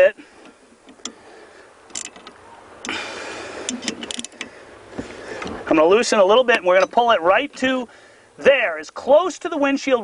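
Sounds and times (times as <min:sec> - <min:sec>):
clamp hardware clicks: 0:01.9 - 0:02.4.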